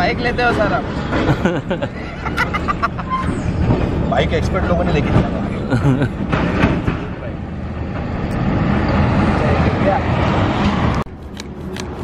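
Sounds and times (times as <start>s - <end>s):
road traffic noise: 0.0s - 12.0s.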